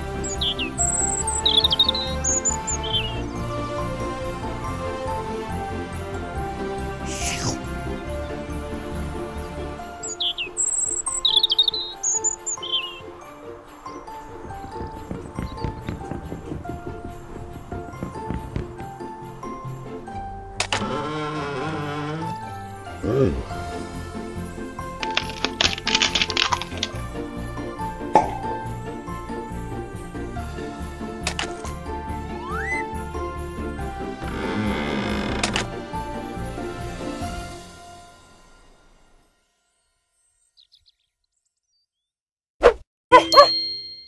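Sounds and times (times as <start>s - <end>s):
background music: 0.0s - 40.0s
bright bell-like ding: 43.2s - 44.0s.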